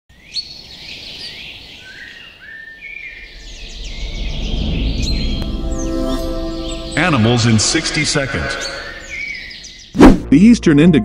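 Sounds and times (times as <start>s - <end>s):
birds chirping and whistling: 0.2s - 10.1s
low rumble: 3.0s - 8.2s
held musical chord: 3.2s - 9.4s.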